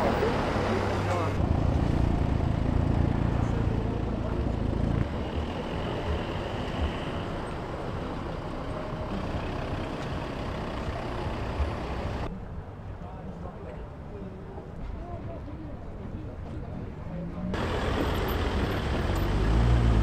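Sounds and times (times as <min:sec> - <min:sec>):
car engines driving slowly: 0:00.0 - 0:15.0, 0:15.8 - 0:20.0.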